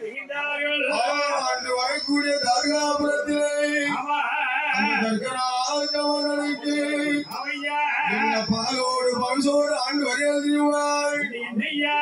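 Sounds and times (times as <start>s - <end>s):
man singing through a microphone: 0.0s - 12.0s.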